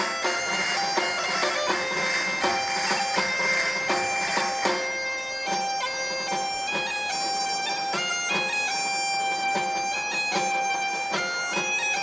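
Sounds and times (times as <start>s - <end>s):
bagpipes drone and melody: 0.0s - 12.0s
percussion hits: 0.0s - 12.0s.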